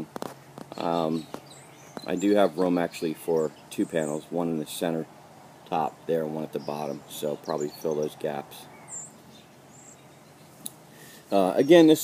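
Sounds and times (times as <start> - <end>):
faint outdoor background: 0.0 - 12.0
high bird chirps: 0.7 - 4.2, 6.6 - 11.8.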